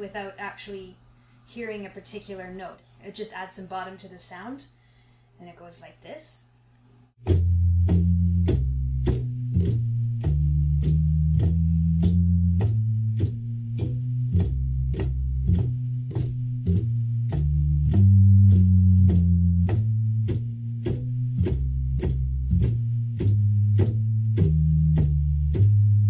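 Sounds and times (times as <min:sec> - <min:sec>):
organ walking bass line: 0:07.2 - 0:26.0.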